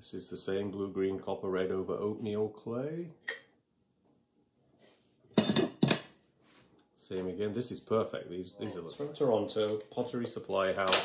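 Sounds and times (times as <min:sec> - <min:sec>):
pottery mugs clinking: 0:05.4 - 0:06.1, 0:08.6 - 0:11.0.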